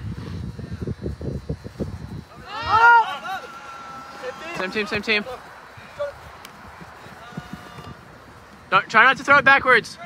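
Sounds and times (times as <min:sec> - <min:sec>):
distant players shouting: 0:02.3 - 0:10.0.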